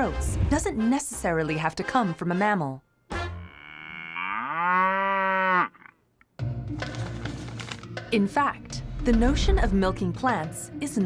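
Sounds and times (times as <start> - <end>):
cow mooing: 3.2 - 6.0.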